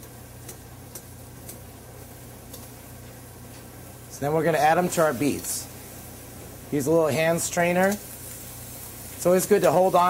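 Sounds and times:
pot of water boiling: 0.0 - 10.0
steady low hum: 0.0 - 10.0.

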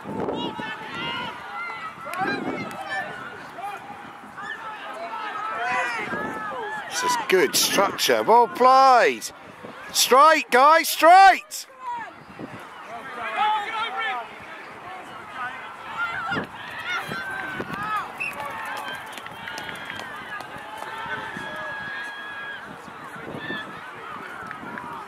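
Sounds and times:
distant shouts of players and spectators: 0.0 - 25.0.

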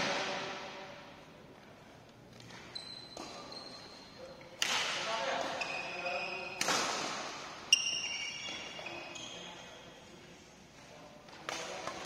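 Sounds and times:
sneaker squeaks: 2.4 - 4.6, 5.3 - 10.0
racket striking shuttlecock: 4.6 - 5.1, 6.6 - 7.5.

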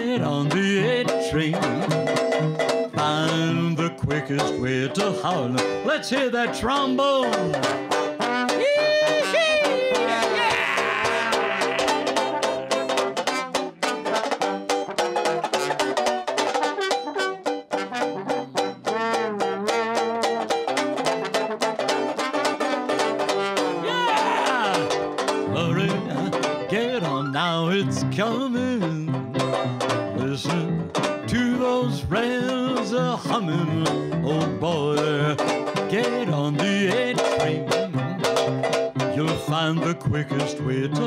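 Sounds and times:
strummed banjo: 0.0 - 41.0
slide trombone solo: 7.6 - 15.8, 16.4 - 24.0.

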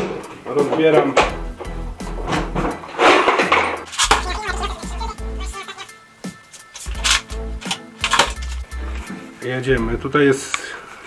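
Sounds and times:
ignition switch scraping in hand: 6.5 - 9.1.

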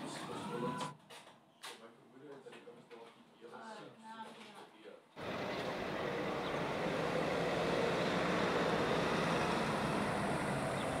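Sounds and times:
street traffic noise: 5.2 - 11.0.

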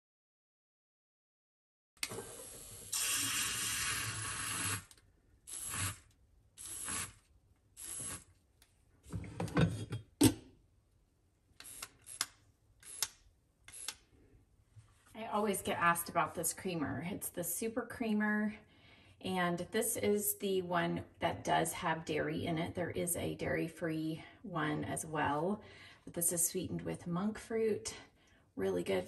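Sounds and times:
milk frother whirring: 2.1 - 7.2, 7.8 - 8.3.

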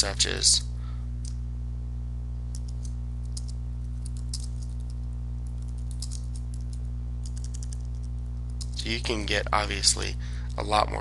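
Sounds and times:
low hum: 0.0 - 11.0
keyboard typing: 2.5 - 8.8.

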